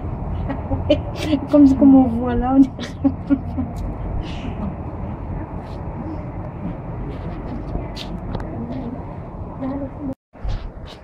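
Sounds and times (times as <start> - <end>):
rumbling ambient noise: 0.0 - 11.0.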